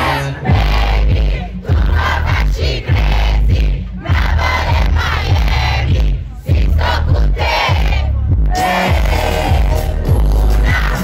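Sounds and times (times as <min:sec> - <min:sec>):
crowd shouting and singing along: 0:00.0 - 0:11.0
heavy bass rap beat: 0:00.0 - 0:11.0.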